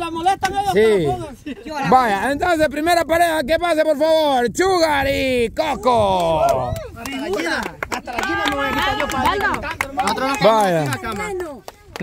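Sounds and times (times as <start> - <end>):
sharp hand claps: 6.1 - 12.0.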